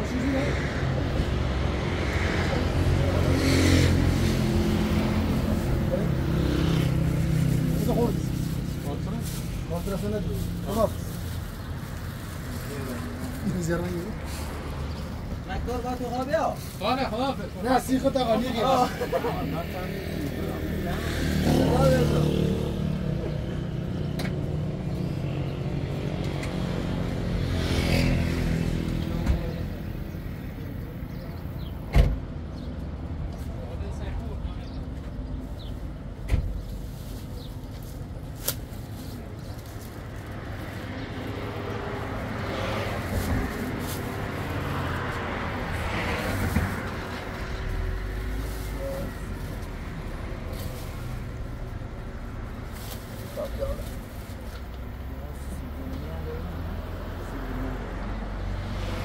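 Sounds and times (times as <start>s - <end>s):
vehicles passing on road: 0.0s - 59.0s.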